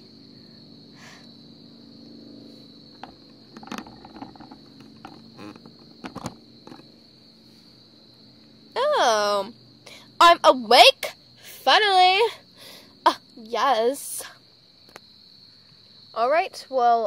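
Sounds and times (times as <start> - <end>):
crickets chirring: 0.0 - 17.0
toys tapping and rustling on pavement: 2.9 - 6.9.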